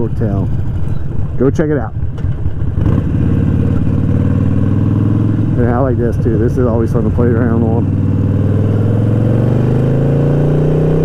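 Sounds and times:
motorcycle engine cruising: 0.0s - 11.0s.

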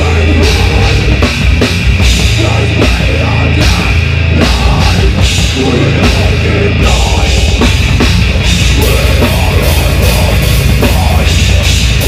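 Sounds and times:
distorted guitars and bass: 0.0s - 12.0s
drum kit with crashing cymbals: 0.0s - 12.0s.

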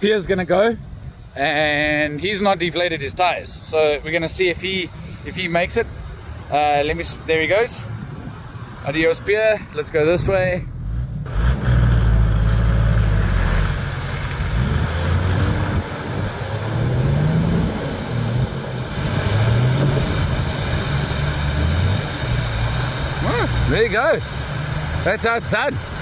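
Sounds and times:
vehicle engine revving: 10.6s - 26.0s
vehicle driving through mud and water: 10.9s - 26.0s.

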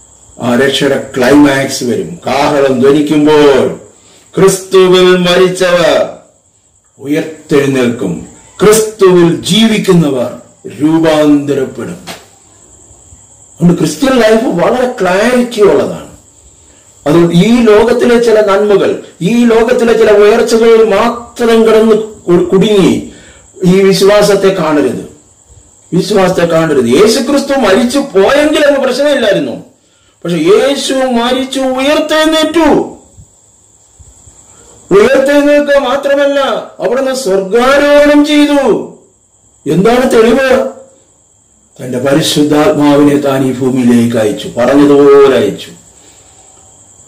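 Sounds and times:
faint high steady whine: 0.0s - 47.0s
man speaking: 0.4s - 6.3s, 7.0s - 12.2s, 13.6s - 16.2s, 17.0s - 25.2s, 25.9s - 33.0s, 34.9s - 39.0s, 39.6s - 40.9s, 41.8s - 45.8s
man preaching: 0.4s - 6.4s, 7.0s - 12.2s, 13.6s - 16.2s, 17.0s - 33.1s, 34.8s - 41.0s, 41.8s - 45.8s
faint high-pitched tone: 8.2s - 8.8s.

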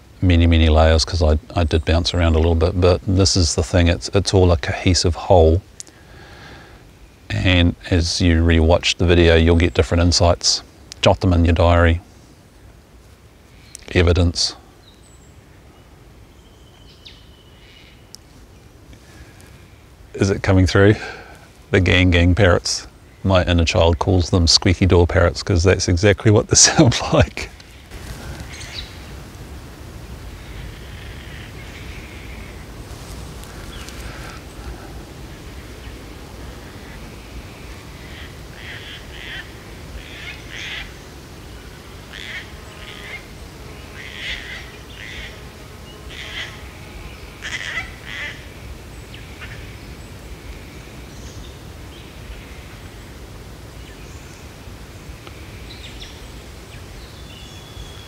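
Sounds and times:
cockatoos calling: 26.5s - 53.2s.

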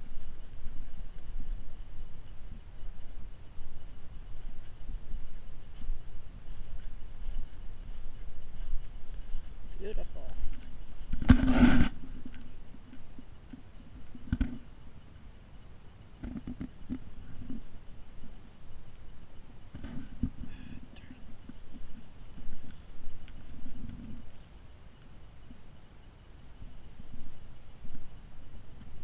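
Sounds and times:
footsteps on grass: 0.0s - 14.8s, 16.5s - 25.6s.

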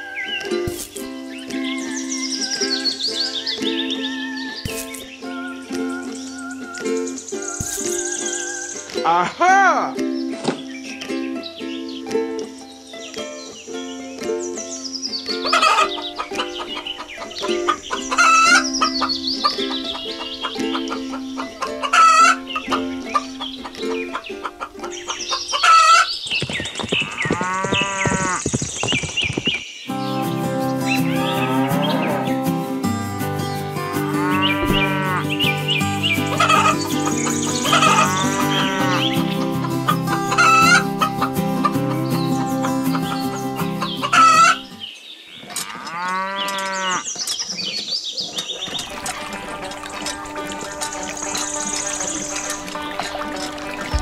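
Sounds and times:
rooster crowing: 1.8s - 8.8s
chickens clucking: 10.4s - 28.4s, 33.8s - 54.0s
musical backing: 29.9s - 44.8s, 48.7s - 54.0s.

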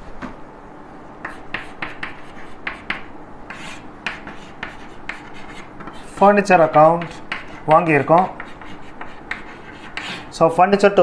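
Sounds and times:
chalk scratching on blackboard: 1.2s - 10.4s.

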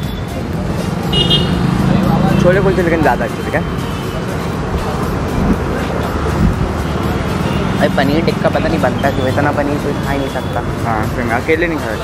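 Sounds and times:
motorbikes and scooters passing: 0.0s - 12.0s.

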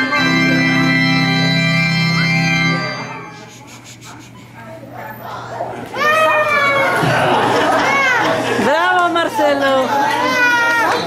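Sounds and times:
toddler crying: 10.0s - 11.0s.

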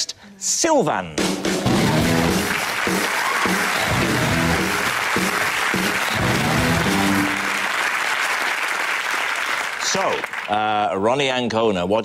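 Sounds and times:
game show music: 1.2s - 8.5s
studio audience applauding: 1.7s - 10.9s.

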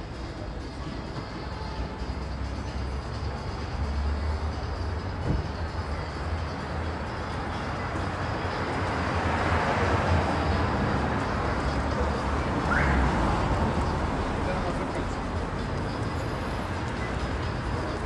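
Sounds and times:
city traffic rumble: 0.0s - 18.0s.

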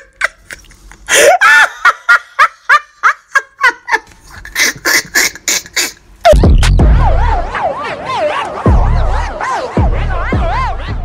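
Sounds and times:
high-pitched laughter: 0.0s - 11.0s.

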